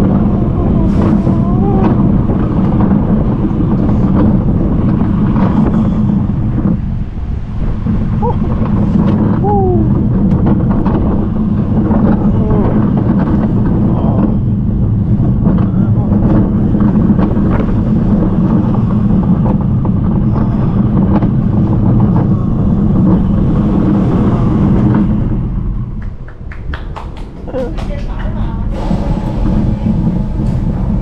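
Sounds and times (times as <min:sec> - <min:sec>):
roller coaster rumbling on track: 0:00.0 - 0:31.0
wind on microphone: 0:00.0 - 0:31.0.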